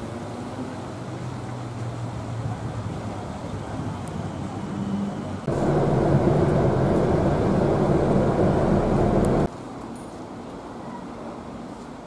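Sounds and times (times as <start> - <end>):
vehicle engine and road rumble: 0.0 - 9.8.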